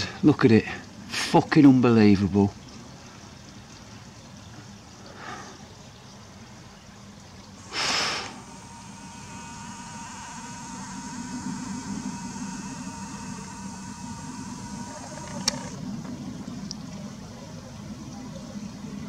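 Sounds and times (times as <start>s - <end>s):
thin high hum: 7.6s - 17.3s
low mechanical rumble: 7.6s - 18.7s
sharp click: 14.9s - 15.8s.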